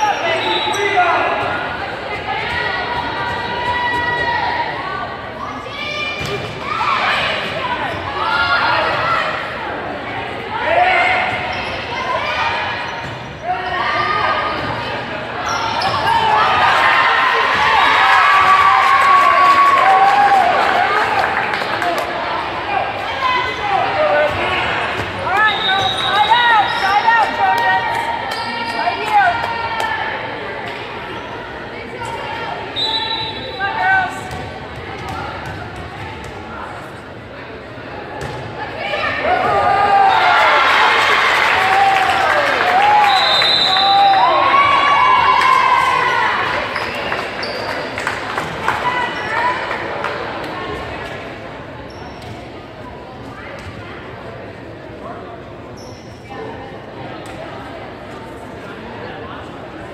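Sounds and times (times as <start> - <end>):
players and spectators shouting: 0.0 - 30.4, 38.7 - 47.5.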